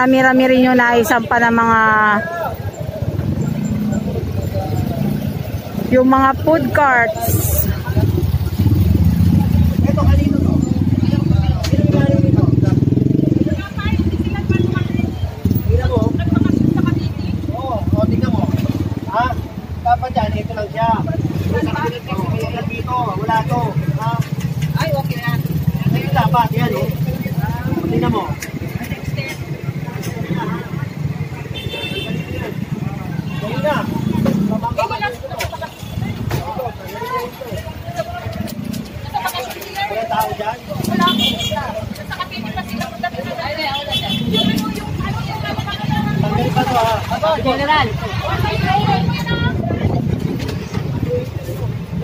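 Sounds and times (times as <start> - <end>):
people talking: 0.0 - 52.0.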